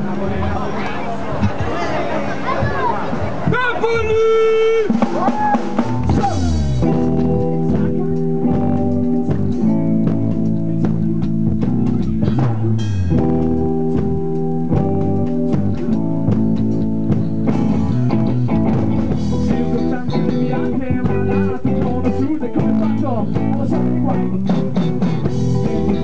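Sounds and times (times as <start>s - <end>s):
drum kit: 2.6s - 26.0s
distorted electric guitar chords: 5.8s - 26.0s.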